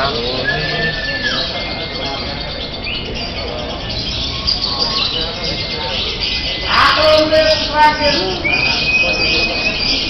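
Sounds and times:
crowd voices: 0.0 - 10.0
lovebirds chattering: 0.0 - 10.0.

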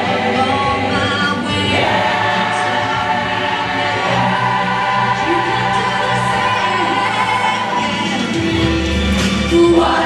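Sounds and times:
choir singing long notes: 0.0 - 8.8.

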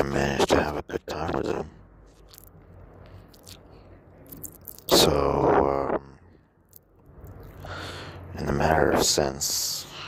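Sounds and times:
man talking: 0.0 - 1.8, 4.8 - 6.2, 8.3 - 10.0
low background noise: 0.0 - 10.0.

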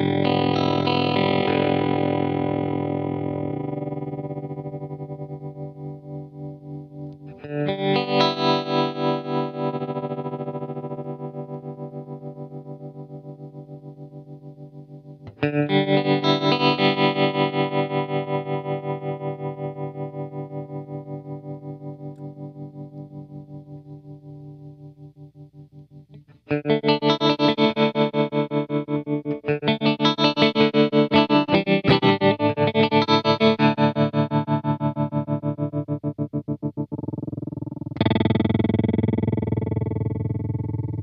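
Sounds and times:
electric guitar chord with tremolo: 0.0 - 25.7, 26.5 - 41.0.

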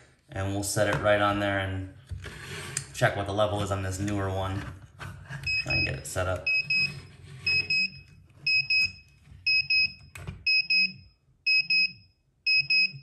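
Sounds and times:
high-pitched double alarm beeps: 7.5 - 13.0.

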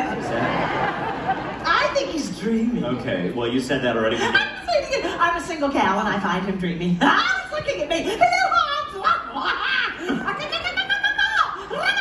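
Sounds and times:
audience laughing: 0.0 - 2.1.

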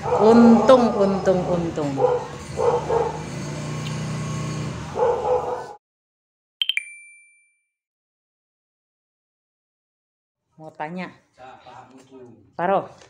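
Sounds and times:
bright chime: 6.6 - 7.6.

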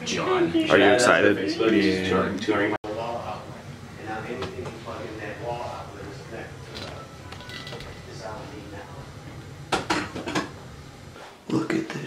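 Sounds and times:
low room noise: 0.0 - 12.0
dishes and cutlery clattering: 6.7 - 8.1.

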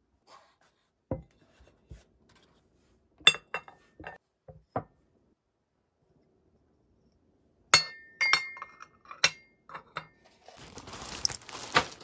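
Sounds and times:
ceramic dishes clinking: 3.2 - 4.2, 7.8 - 10.2.

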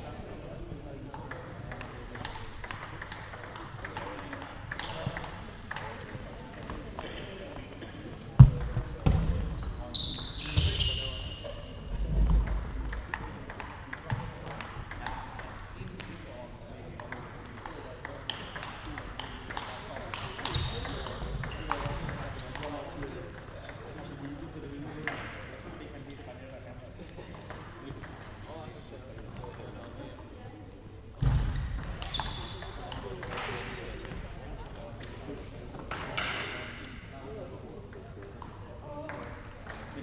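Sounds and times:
voices talking: 2.6 - 15.6.

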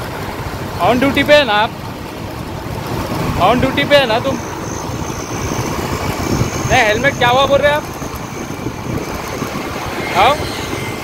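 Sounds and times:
scooter engines and road noise: 0.0 - 11.0.

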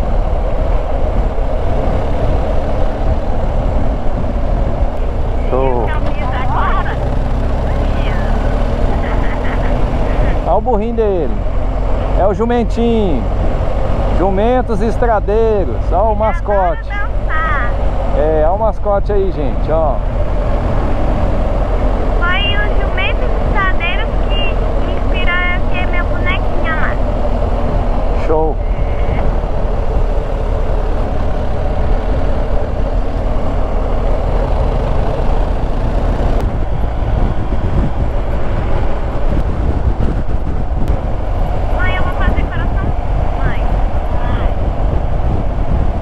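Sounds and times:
motorcycle engine droning: 0.0 - 46.0
wind and road noise: 0.0 - 46.0
wind buffeting microphone: 0.0 - 46.0.

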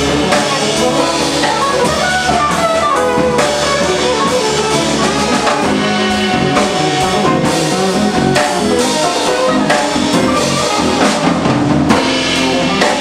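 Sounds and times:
drum kit with cymbals: 0.0 - 13.0
electric bass: 0.0 - 13.0
guitar: 0.0 - 13.0
saxophone melody: 0.0 - 13.0.

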